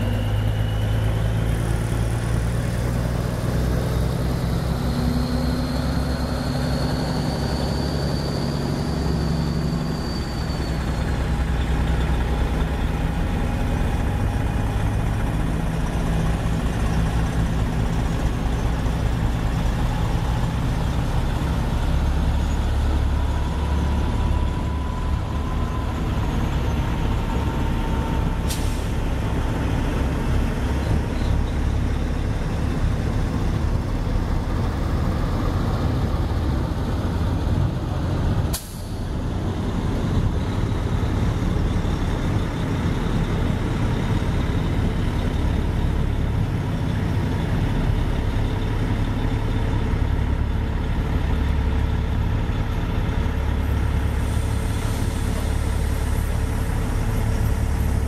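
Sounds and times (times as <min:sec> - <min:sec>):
diesel truck engines rumbling: 0:00.0 - 0:58.0.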